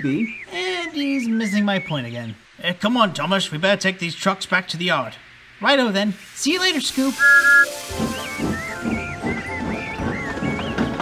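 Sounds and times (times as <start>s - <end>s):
steam locomotive whistle toot: 7.2s - 11.0s
whistle melody over beat: 7.2s - 11.0s.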